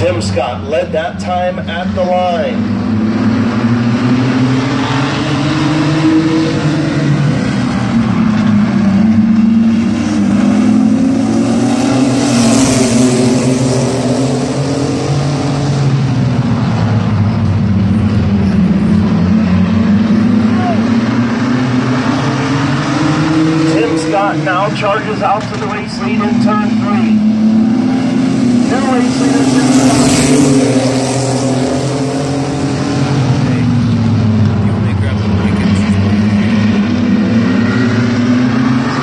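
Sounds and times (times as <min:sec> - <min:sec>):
race truck engines: 0:00.0 - 0:39.0.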